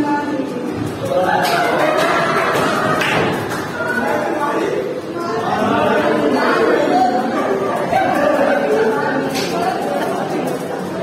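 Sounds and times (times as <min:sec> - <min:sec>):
women laughing: 0:06.8 - 0:11.0.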